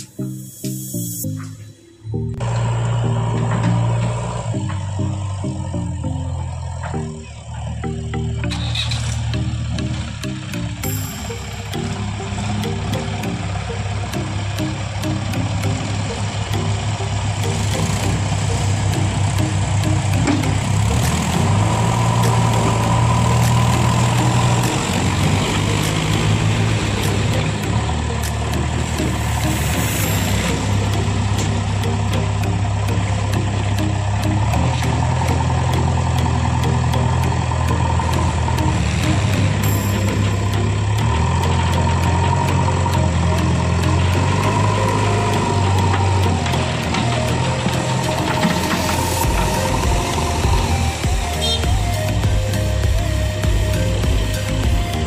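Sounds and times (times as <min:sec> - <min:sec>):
backhoe diesel engine running: 0:00.0 - 0:55.0.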